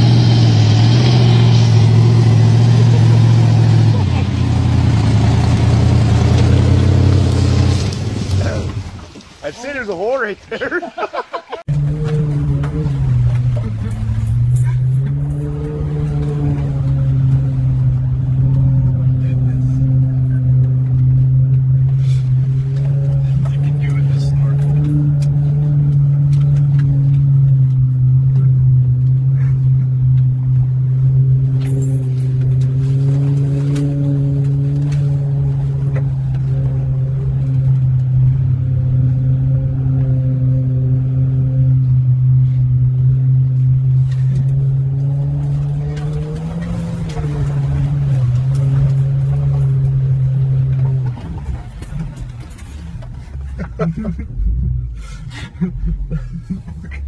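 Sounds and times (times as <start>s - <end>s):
engine heard from inside cab: 0.0s - 9.1s, 11.6s - 57.0s
water and mud splashing on body: 0.0s - 39.8s, 44.7s - 54.2s.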